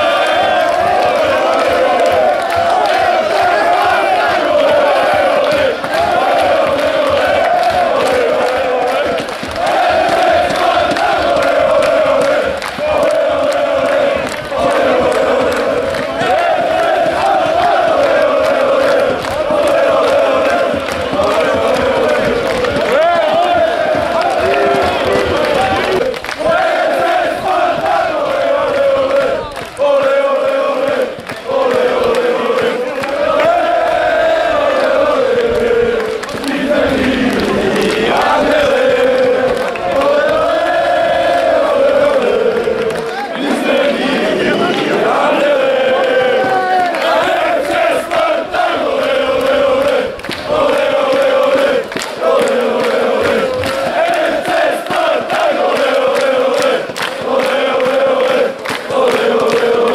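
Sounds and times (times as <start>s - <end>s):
crowd chanting in unison: 0.0s - 59.9s
rhythmic hand clapping: 0.0s - 59.9s.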